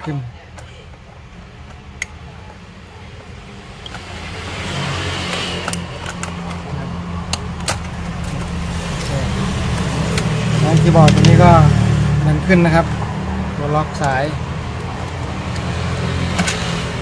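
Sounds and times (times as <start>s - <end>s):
low engine-like drone: 1.3s - 17.0s.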